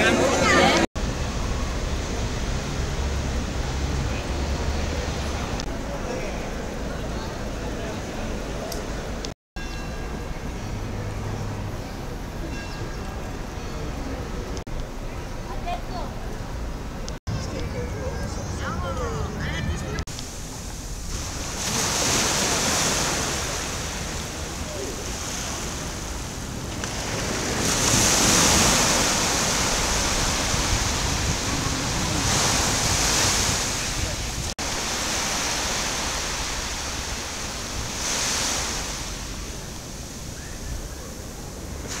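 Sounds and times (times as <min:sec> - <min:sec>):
sea surf breaking on beach: 0:20.0 - 0:42.0.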